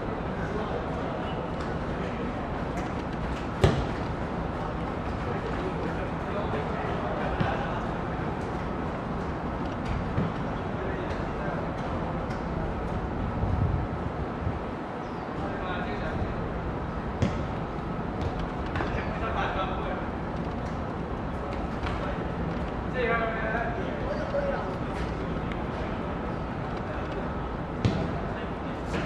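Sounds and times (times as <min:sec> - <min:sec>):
outdoor background hum: 0:00.0 - 0:29.0
football kick thud: 0:03.6 - 0:04.0, 0:27.8 - 0:28.1.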